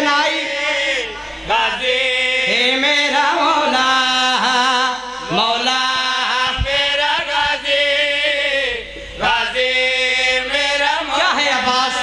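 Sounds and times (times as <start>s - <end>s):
men chanting into a microphone: 0.0s - 12.0s.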